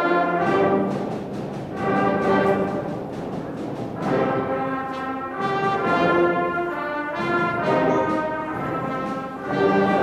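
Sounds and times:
concert band playing held chords: 0.0s - 10.0s.

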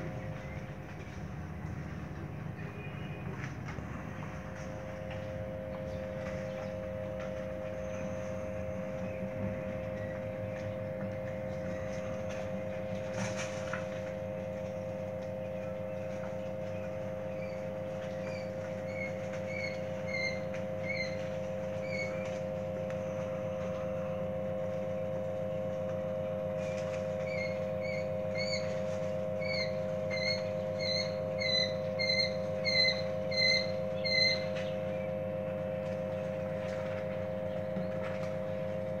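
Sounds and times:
steady low hum: 0.0s - 39.0s
quail chicks peeping: 15.6s - 22.4s, 26.6s - 34.9s.

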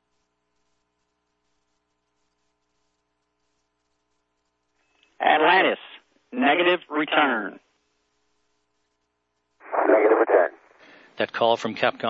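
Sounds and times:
man's voice over radio: 5.2s - 7.6s, 9.6s - 10.6s.

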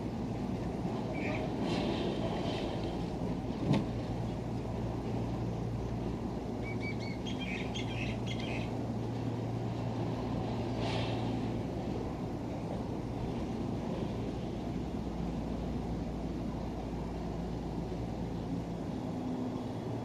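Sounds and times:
gondola cable rumble and hum: 0.0s - 20.0s
birds chirping: 6.6s - 8.7s.

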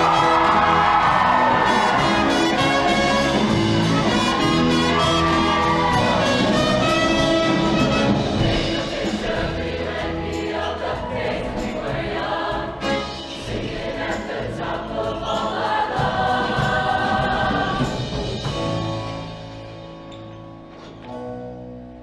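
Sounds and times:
choir singing in parts: 0.0s - 18.5s
instrumental accompaniment with bass: 0.0s - 22.0s.

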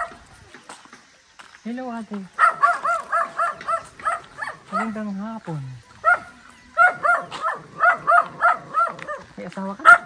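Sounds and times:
dog yapping rapidly: 2.4s - 5.0s, 6.0s - 10.0s.

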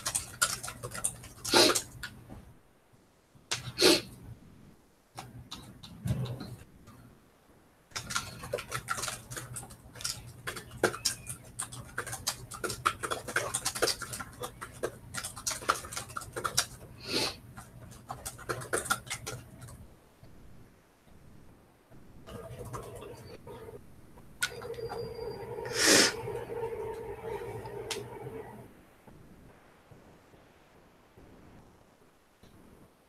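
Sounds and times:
laptop keyboard typing: 0.0s - 2.2s, 5.2s - 7.0s, 7.9s - 19.9s, 22.2s - 23.8s, 24.4s - 28.6s
low steady hum: 0.0s - 33.0s.

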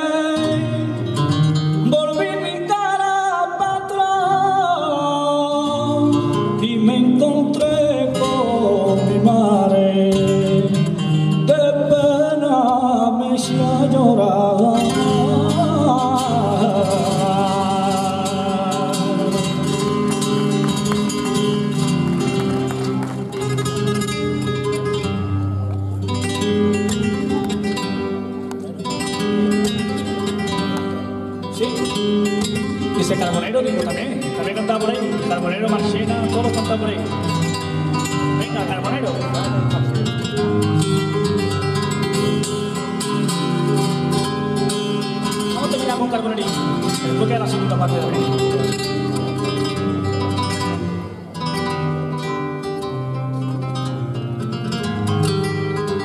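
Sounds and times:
flamenco guitar: 0.0s - 56.0s.

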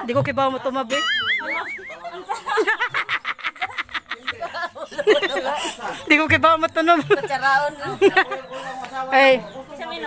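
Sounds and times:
people laughing: 1.0s - 6.3s, 6.9s - 9.0s.

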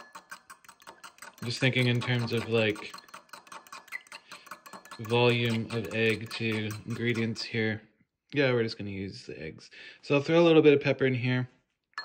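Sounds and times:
fork whisking eggs in bowl: 0.0s - 7.6s.

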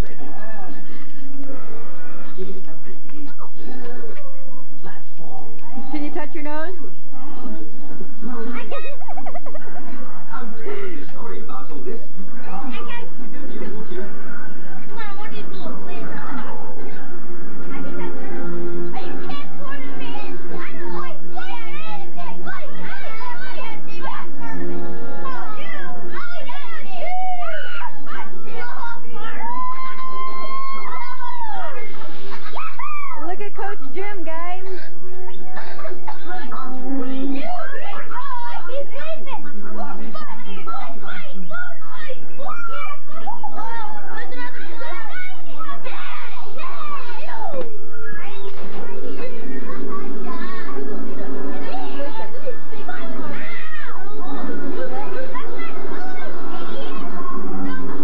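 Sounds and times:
steady music: 0.0s - 58.0s
children yelling and calling: 19.0s - 33.7s, 35.3s - 58.0s
boys shouting and squealing: 25.2s - 33.3s, 36.4s - 48.4s.

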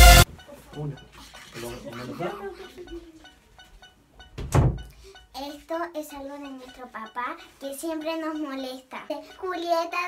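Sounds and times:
loud deep thump: 4.4s - 4.8s
child's voice: 5.3s - 10.0s.

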